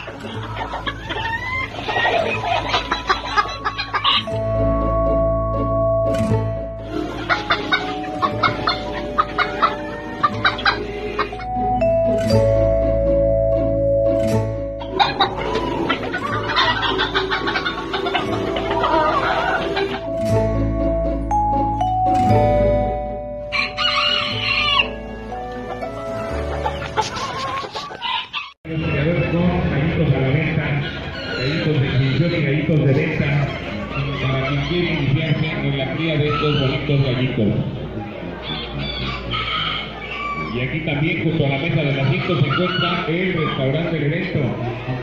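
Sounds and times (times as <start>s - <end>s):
chickens clucking: 0.0s - 4.8s, 6.8s - 11.8s, 14.7s - 20.2s, 23.6s - 45.0s
background music: 0.0s - 45.0s
rooster crowing: 9.4s - 10.8s, 23.5s - 25.5s, 27.4s - 28.6s, 38.4s - 40.6s.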